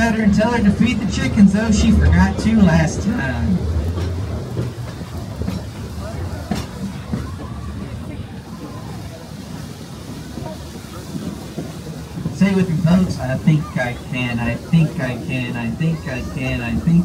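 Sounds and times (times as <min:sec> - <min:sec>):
faint voices: 0:00.0 - 0:17.0
train cars rolling on track: 0:00.0 - 0:17.0.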